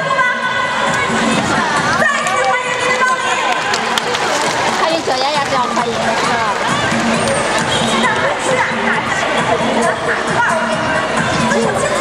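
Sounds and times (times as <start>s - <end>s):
audience noise: 0.0s - 12.0s
music: 0.0s - 12.0s
woman talking over public address: 2.0s - 6.8s.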